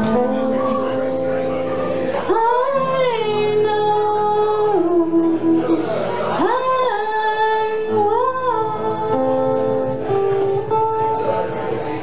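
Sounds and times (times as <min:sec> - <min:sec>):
acoustic guitar picking single notes: 0:00.0 - 0:12.0.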